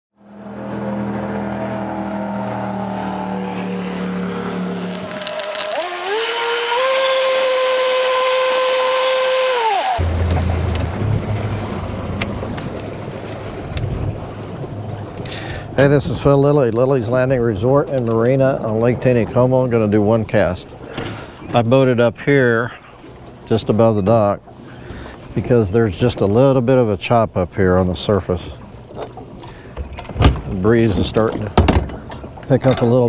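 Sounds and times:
motor humming and whining: 0.9 - 10.0
low rumble with light knocks: 10.0 - 15.3, 28.8 - 33.0.

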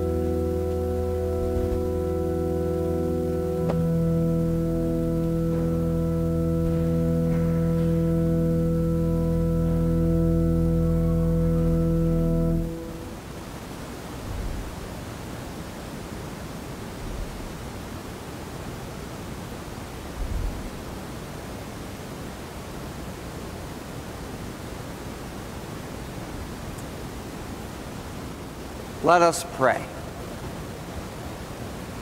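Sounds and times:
soft low thumps: 0.0 - 13.0
recording hiss: 0.0 - 32.0.

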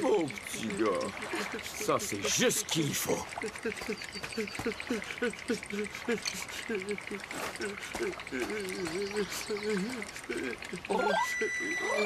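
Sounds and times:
man moaning: 3.4 - 12.0.

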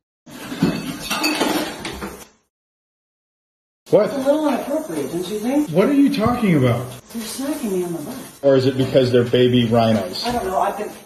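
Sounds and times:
dishes clinking and clattering: 0.3 - 2.3.

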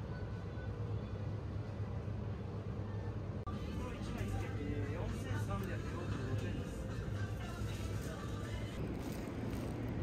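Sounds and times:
background music: 3.5 - 9.7.

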